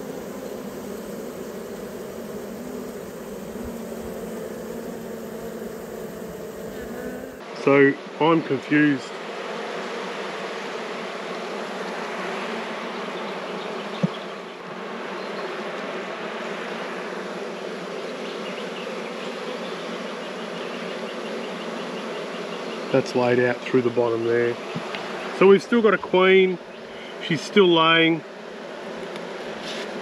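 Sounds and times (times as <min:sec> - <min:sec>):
honeybees buzzing: 0:00.0 - 0:30.0.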